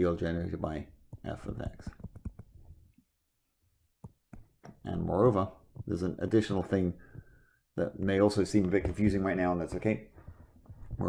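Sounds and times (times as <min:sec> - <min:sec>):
stylus tapping on tablet: 0:01.1 - 0:02.7, 0:04.0 - 0:04.8.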